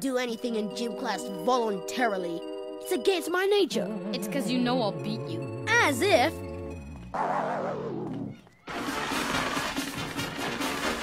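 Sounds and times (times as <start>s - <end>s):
cartoon music with brass: 0.6s - 11.0s.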